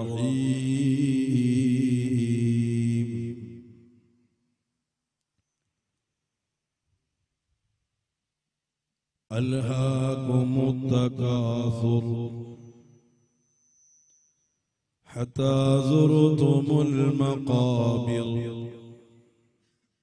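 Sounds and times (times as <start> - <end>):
man chanting melodically: 0.0 - 3.8, 9.3 - 12.8, 15.0 - 19.0.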